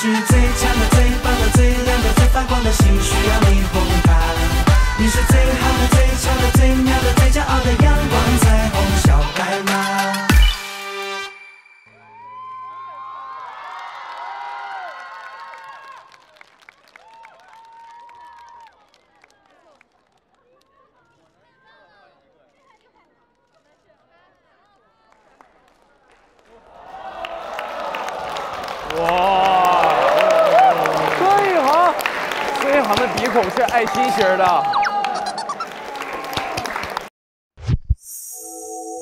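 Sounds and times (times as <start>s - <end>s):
audience cheering and screaming: 11.9s - 16.2s, 17.0s - 18.7s, 26.7s - 37.0s
scattered clapping: 27.2s - 37.1s.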